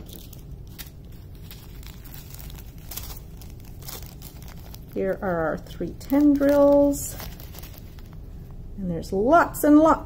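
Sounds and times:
plastic bag crinkling: 0:00.0 - 0:08.5.

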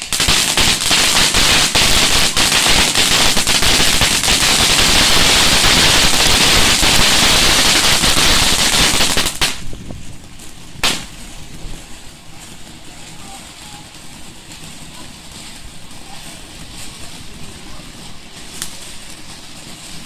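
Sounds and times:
fireworks cracking and banging: 0:00.0 - 0:20.0.

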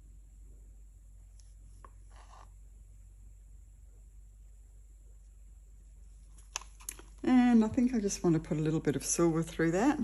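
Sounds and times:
steady low hum: 0:00.0 - 0:10.0
stick scraping in plastic cup: 0:02.1 - 0:02.5.

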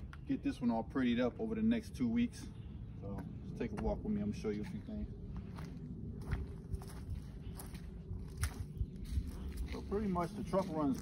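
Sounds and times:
footsteps on dry leafy grass: 0:04.6 - 0:11.0.

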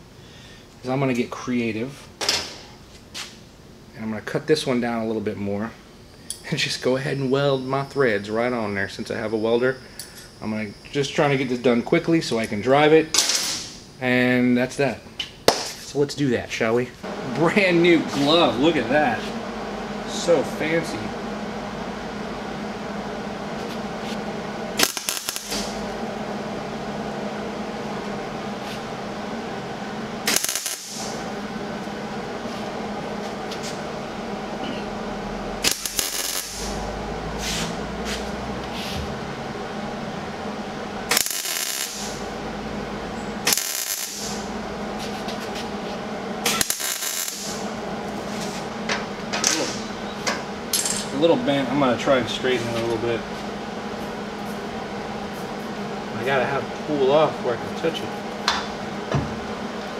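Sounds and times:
steady welder hum: 0:00.0 - 0:59.9
welder crackling: 0:17.0 - 0:59.1.

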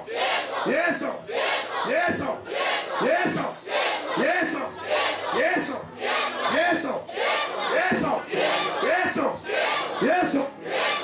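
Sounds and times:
crowd: 0:00.0 - 0:11.0
people shouting and crying out: 0:00.0 - 0:11.0.

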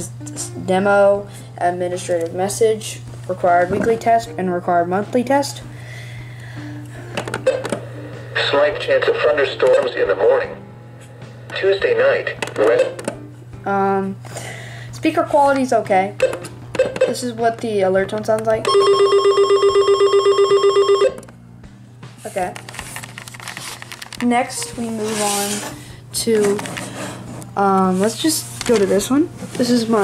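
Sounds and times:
steady low hum: 0:00.0 - 0:18.7.

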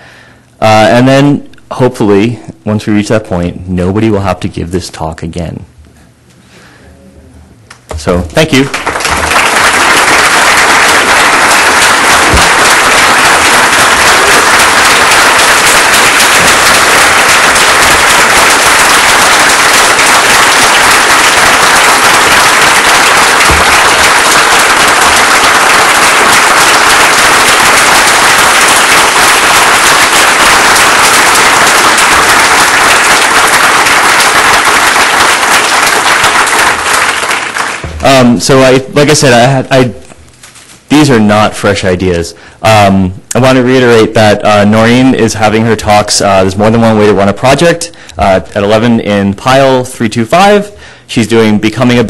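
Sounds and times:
large audience applauding: 0:08.5 - 0:38.3.

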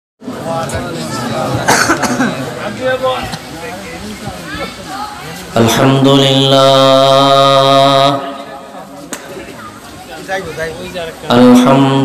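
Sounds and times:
people talking: 0:00.3 - 0:12.0
person coughing: 0:01.7 - 0:02.4.

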